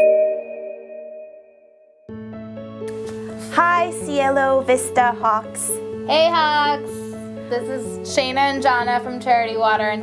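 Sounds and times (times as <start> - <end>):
chime-like note ringing: 0.0 - 2.0.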